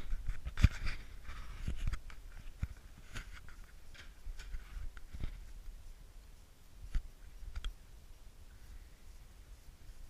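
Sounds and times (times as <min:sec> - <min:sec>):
faint sharp clicks: 0:06.9 - 0:07.8.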